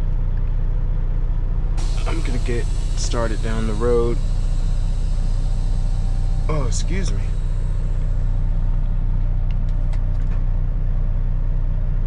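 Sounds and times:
diesel truck engine idling: 0.8 - 12.0.

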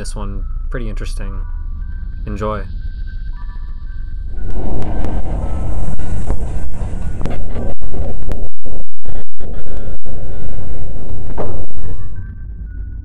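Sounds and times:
distorted rumble with static: 0.0 - 13.0.

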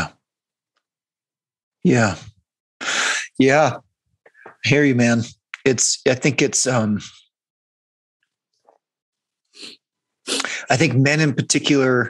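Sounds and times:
man breathing in: 2.8 - 3.4.

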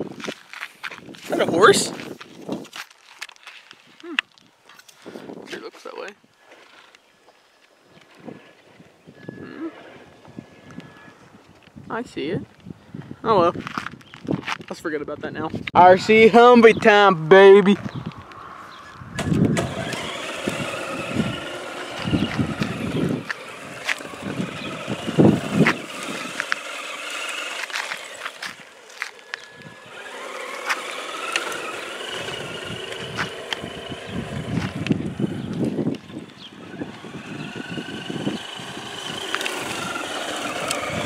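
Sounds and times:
low rumbling over gravel: 13.4 - 41.0
electric motor and gears whining: 16.0 - 41.0.

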